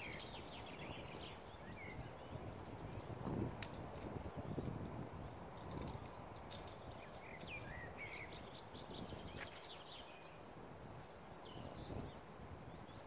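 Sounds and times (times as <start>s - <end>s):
songbird singing: 0.0s - 13.0s.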